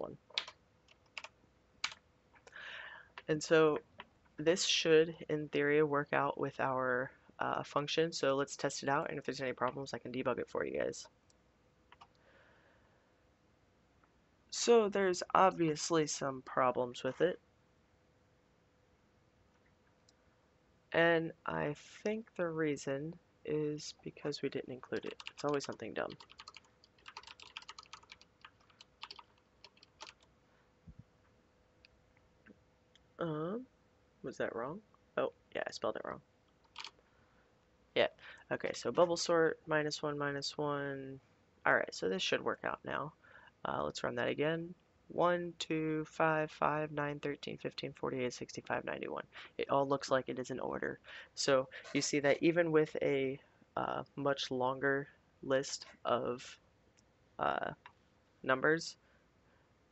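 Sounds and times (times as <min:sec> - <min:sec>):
keyboard typing: 0:00.3 - 0:02.0, 0:24.8 - 0:30.3, 0:36.6 - 0:37.0.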